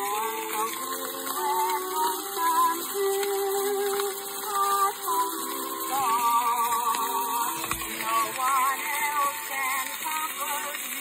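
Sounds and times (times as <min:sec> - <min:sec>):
record surface hiss: 0:00.0 - 0:11.0
soprano singing with orchestra: 0:00.0 - 0:11.0.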